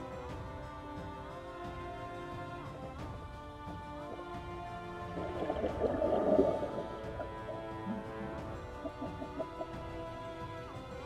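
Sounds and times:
background music: 0.0s - 11.0s
bubbles gurgling underwater: 5.1s - 9.7s.

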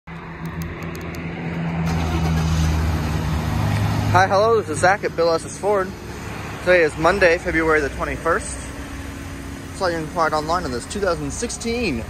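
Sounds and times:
pickup engine running: 0.5s - 12.0s.

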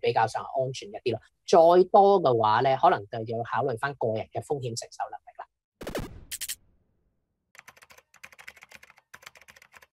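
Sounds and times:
keyboard typing: 7.5s - 9.9s.

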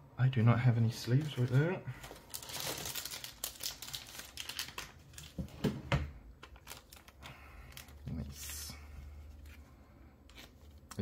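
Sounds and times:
plastic packaging crinkling: 1.0s - 5.6s, 6.4s - 8.5s.

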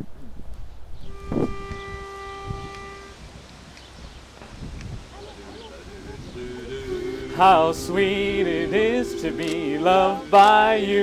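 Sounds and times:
wind rumble on microphone: 0.0s - 5.2s, 5.8s - 11.0s
pitch pipe held note: 1.1s - 3.2s, 6.3s - 10.9s.

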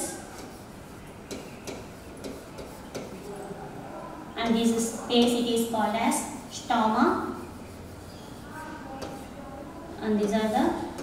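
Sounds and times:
pen tapping on glass board: 1.3s - 3.1s, 9.0s - 9.2s.

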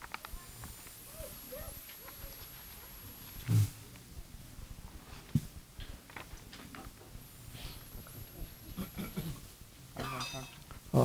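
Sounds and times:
microphone handling clicks and rustles: 1.8s - 9.3s.

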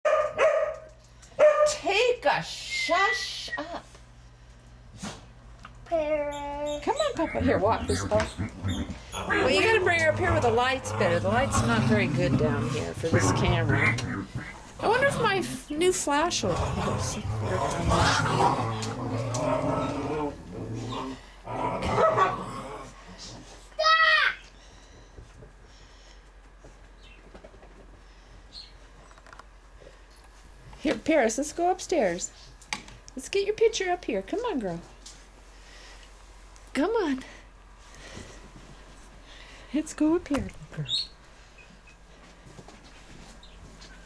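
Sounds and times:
small dog barking: 0.0s - 1.8s
puppy growling low: 7.2s - 23.3s.

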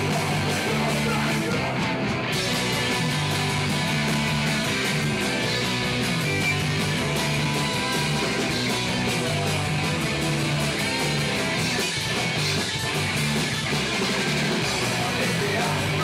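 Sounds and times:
drums: 0.0s - 16.0s
electric bass: 0.0s - 16.0s
electric guitar: 0.0s - 16.0s.

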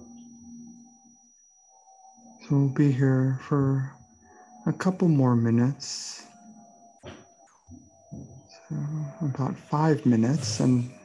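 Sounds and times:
ambient drone music: 0.0s - 11.0s.

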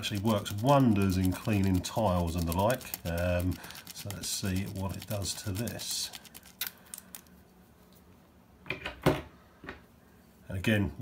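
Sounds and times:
scratchy rub of scrubbing: 0.0s - 6.7s.

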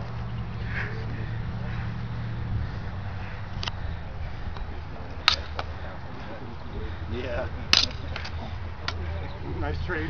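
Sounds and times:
faint voices: 0.2s - 10.0s.

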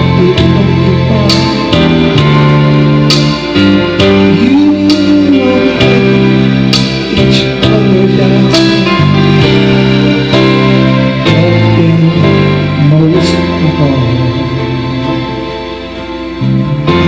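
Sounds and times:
man singing into a microphone: 0.0s - 2.6s, 4.0s - 14.9s
karaoke backing track: 0.0s - 17.0s.

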